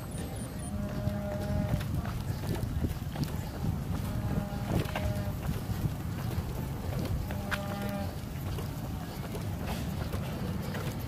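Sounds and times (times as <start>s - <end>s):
rumbling wind: 0.0s - 11.0s.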